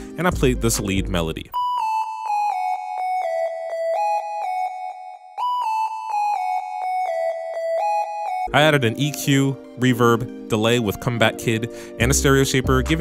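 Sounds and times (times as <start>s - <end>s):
gliding synth lead melody: 1.5s - 13.0s.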